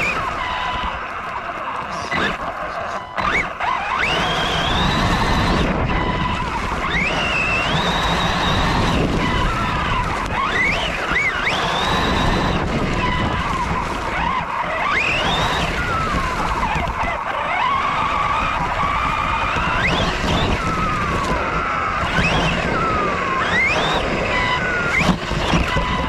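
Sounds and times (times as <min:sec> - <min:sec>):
electric motor whine: 0:00.0 - 0:26.0.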